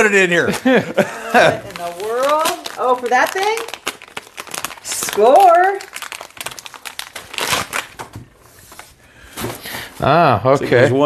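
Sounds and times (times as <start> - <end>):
plastic bag crinkling: 1.4 - 8.9.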